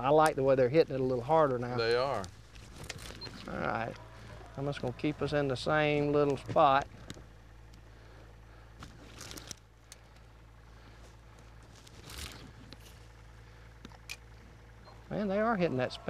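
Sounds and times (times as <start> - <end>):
faint low hum: 0.0 - 16.0.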